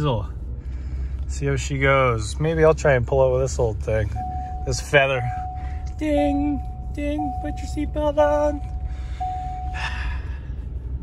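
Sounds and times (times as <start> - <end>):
low engine rumble in a cab: 0.0 - 11.0
seatbelt reminder chime: 4.0 - 10.0
high warning tone: 4.0 - 10.2
short breath: 8.8 - 10.6.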